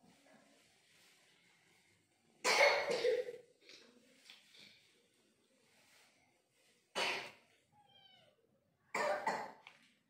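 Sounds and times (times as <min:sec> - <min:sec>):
person coughing: 0:02.5 - 0:03.4.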